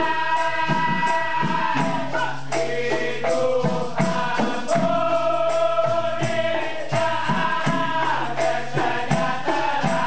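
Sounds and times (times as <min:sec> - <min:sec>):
men singing in chorus: 0:00.0 - 0:10.0
percussive beat: 0:00.0 - 0:10.0.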